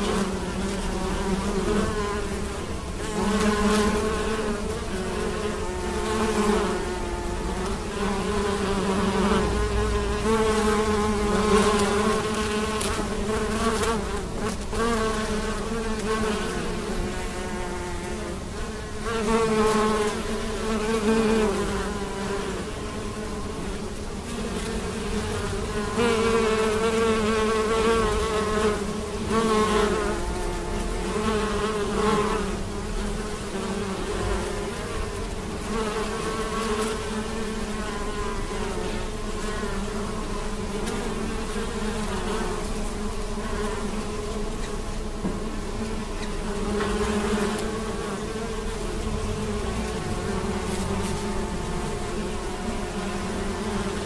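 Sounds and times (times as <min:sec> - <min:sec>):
bees buzzing: 0:00.0 - 0:54.0
close bee buzzes: 0:00.0 - 0:54.0.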